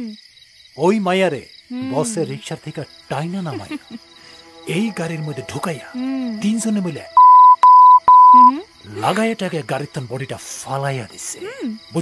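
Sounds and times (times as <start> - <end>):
crickets chirring: 0.0 - 12.0
man talking agitatedly: 0.8 - 3.6, 8.9 - 10.4.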